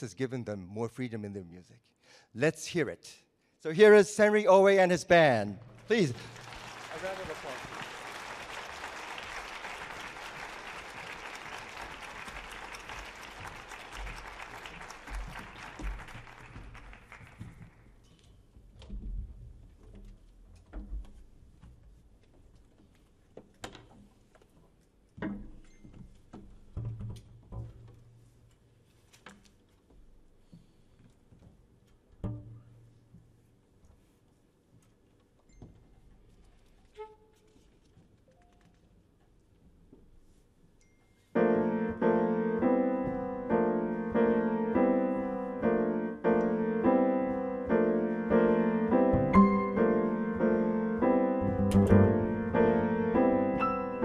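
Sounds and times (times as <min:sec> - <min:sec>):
plucked double bass notes: 0:32.2 - 0:32.8, 0:48.3 - 0:53.6
piano notes: 0:41.3 - 0:54.0.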